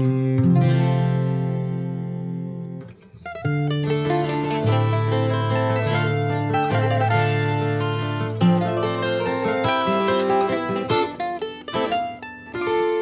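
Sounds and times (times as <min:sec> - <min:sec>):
plucked acoustic strings melody: 0:00.0 - 0:13.0.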